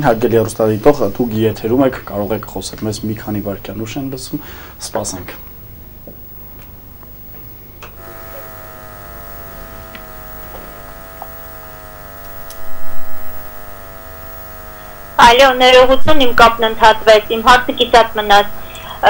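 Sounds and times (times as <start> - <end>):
telephone line electrical buzz: 0.0 - 19.0.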